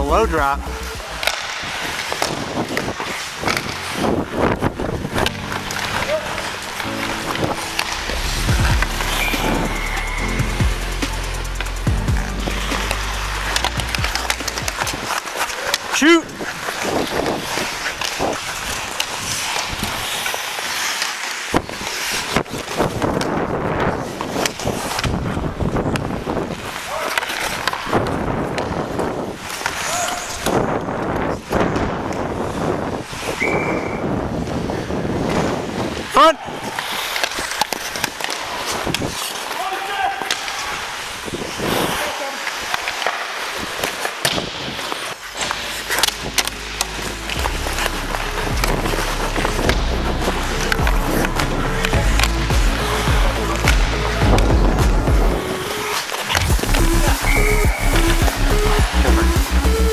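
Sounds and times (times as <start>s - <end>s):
skates scraping ice: 0.0s - 59.9s
sticks and puck clacking: 0.0s - 59.9s
people shouting: 5.9s - 6.5s, 39.6s - 40.5s.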